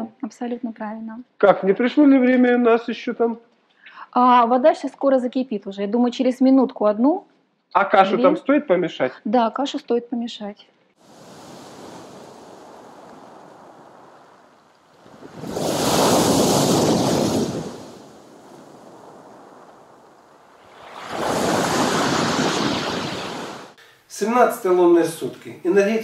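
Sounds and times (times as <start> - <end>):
waves breaking on pebbles: 11.0 - 23.8.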